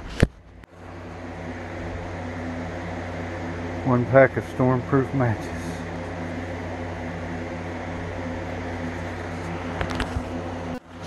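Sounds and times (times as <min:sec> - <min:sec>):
low mechanical hum: 0:00.0 - 0:11.0
person speaking: 0:03.8 - 0:06.2.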